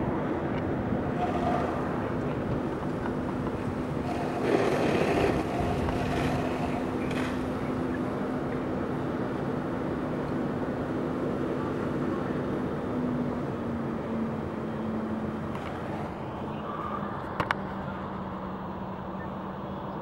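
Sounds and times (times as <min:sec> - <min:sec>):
steady rushing noise: 0:00.0 - 0:13.6
vehicle engine hum: 0:00.0 - 0:20.0.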